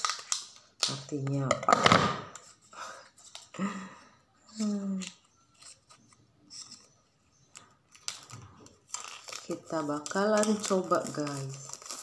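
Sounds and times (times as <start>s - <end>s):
plastic rustle: 4.6s - 12.0s.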